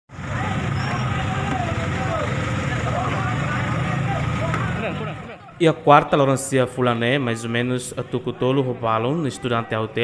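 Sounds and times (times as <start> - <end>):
vehicle engine running: 0.1 - 5.5
people talking and calling out: 0.1 - 10.0.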